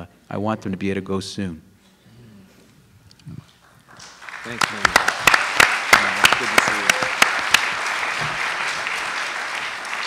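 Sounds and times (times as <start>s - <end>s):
applause: 3.6s - 10.0s.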